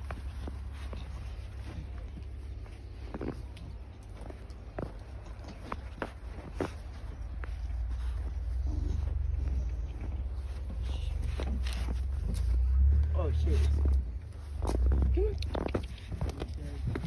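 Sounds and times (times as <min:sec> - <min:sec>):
footsteps crunching in snow: 0:00.0 - 0:17.0
steady low rumble: 0:00.0 - 0:17.0.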